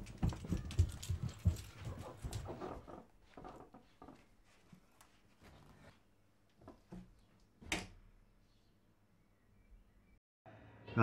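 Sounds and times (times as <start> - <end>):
footsteps on carpeted stairs: 0.0 - 5.8.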